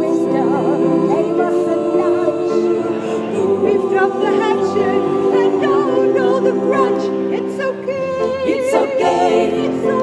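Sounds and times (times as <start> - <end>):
choir singing a cappella: 0.0 - 10.0.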